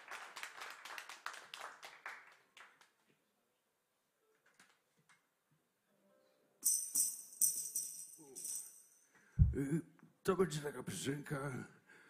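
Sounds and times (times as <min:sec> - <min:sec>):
metal jingles rattling: 0:06.6 - 0:09.0.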